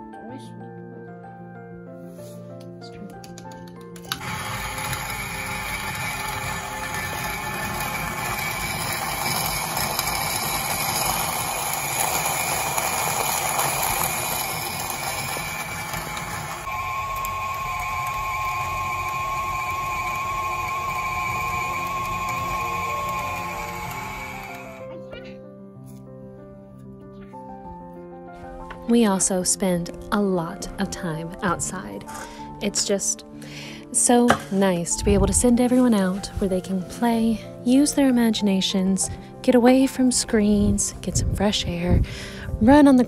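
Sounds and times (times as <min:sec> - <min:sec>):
grain mill grinding: 0:04.0 - 0:25.0.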